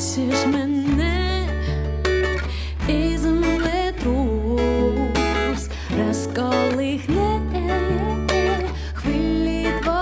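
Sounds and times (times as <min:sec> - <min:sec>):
acoustic guitar strumming: 0:00.0 - 0:10.0
electric bass notes: 0:00.0 - 0:10.0
woman singing: 0:00.0 - 0:10.0.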